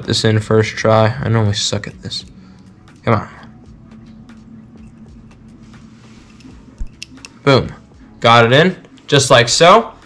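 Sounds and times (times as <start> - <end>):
steady low hum: 0.0 - 9.1.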